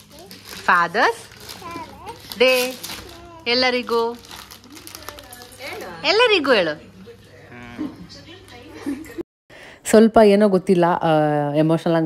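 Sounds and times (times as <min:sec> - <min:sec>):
plastic film crinkling: 0:00.0 - 0:06.0.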